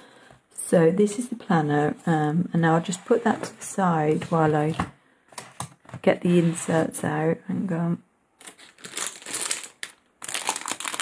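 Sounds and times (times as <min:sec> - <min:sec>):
plastic wrapping crinkling: 0:08.4 - 0:11.0.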